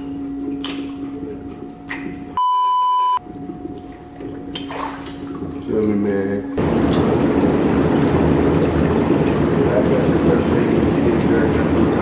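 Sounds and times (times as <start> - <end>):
electronic beep: 2.4 - 3.2.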